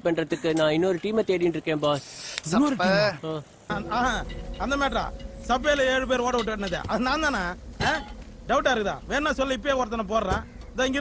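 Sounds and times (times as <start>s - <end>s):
men talking: 0.0s - 11.0s
short high hiss: 1.9s - 2.6s.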